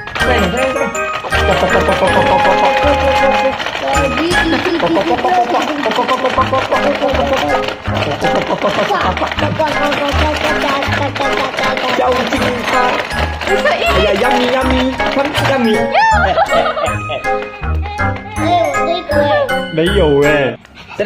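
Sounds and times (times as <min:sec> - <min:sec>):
rapid plastic clacking: 0:00.0 - 0:20.4
background music: 0:00.0 - 0:20.8.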